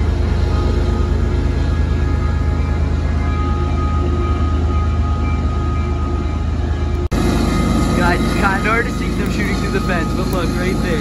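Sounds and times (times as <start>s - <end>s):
diesel locomotive engines running: 0.0s - 11.0s.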